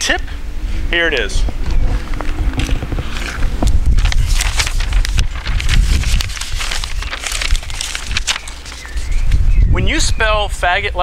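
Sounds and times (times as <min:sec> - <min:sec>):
low rumble: 0:00.4 - 0:08.4.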